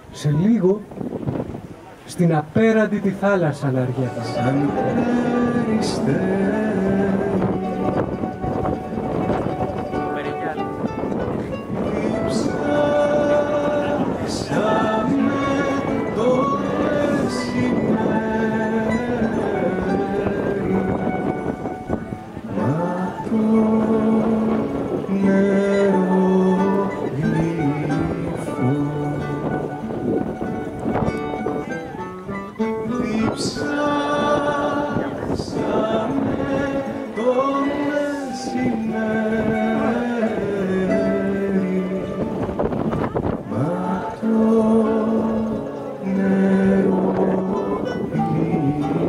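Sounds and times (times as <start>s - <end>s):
man singing long notes: 3.8s - 8.9s, 11.5s - 49.0s
plucked strings: 3.8s - 49.0s
small ensemble playing slow melody: 3.8s - 49.0s.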